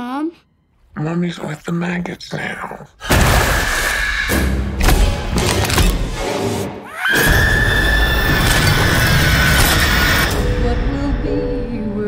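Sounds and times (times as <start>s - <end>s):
low rumbling music: 10.2s - 12.0s.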